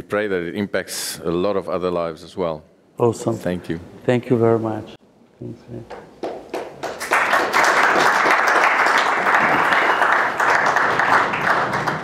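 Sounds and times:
audience applauding: 6.2 - 12.0.

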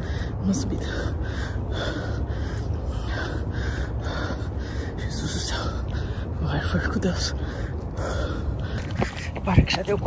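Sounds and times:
runner breathing hard: 0.0 - 9.5
constant low rumble: 0.0 - 10.0.

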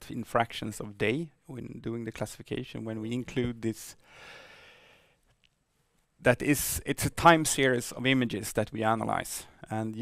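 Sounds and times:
man breathing softly: 4.0 - 5.3.

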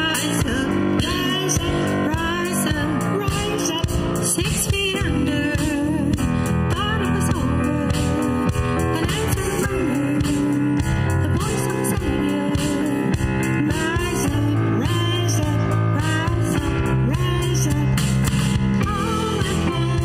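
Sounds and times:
women singing: 0.0 - 18.0, 18.8 - 20.0
drum kit: 0.0 - 20.0
electric bass guitar: 0.0 - 20.0
keyboard: 0.0 - 20.0.

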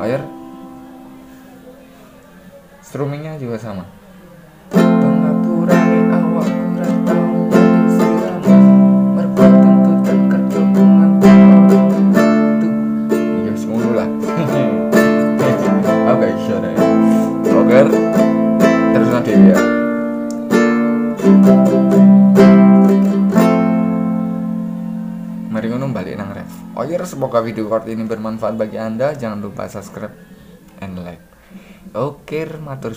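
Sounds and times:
nylon-string guitar strumming: 0.0 - 2.4, 4.7 - 30.0.

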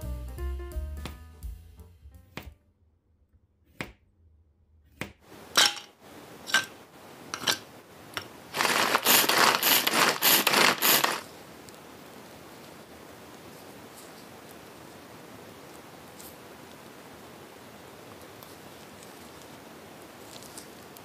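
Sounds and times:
food chopper rattling: 7.4 - 7.6, 8.5 - 11.2.

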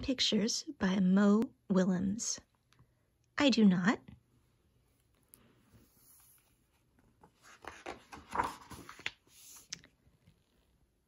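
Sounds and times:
page turning rustle: 6.0 - 10.7.

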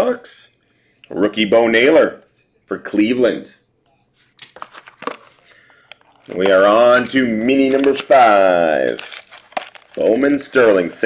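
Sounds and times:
plastic wrap crinkling: 4.4 - 11.0.

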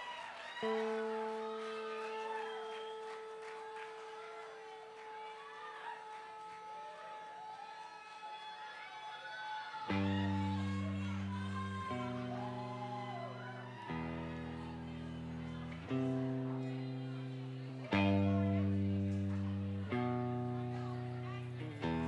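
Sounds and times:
guitar chord ringing: 0.6 - 5.5, 9.9 - 22.0.

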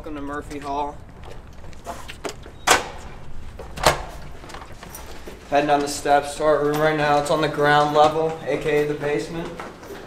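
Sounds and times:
door clacks: 2.2 - 5.1.

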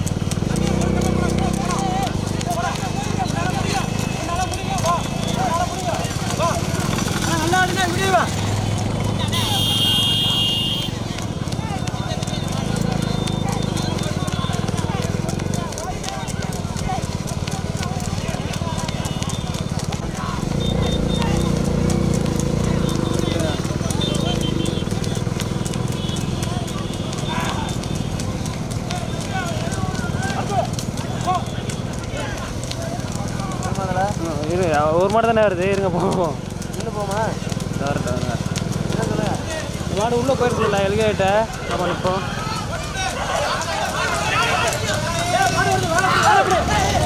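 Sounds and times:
hooves clopping on dirt road: 0.0 - 47.0
motorcycle engines running: 0.0 - 47.0
men shouting: 0.4 - 24.8, 26.0 - 34.0, 39.0 - 47.0.

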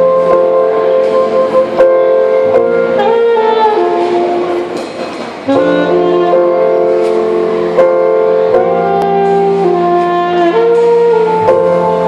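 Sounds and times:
electric keyboard: 0.0 - 12.0
saxophone melody: 0.0 - 12.0.

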